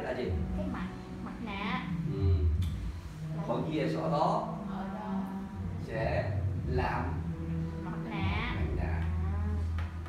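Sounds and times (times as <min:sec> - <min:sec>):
low electrical hum: 0:00.0 - 0:10.0
person humming wordlessly: 0:02.0 - 0:02.8.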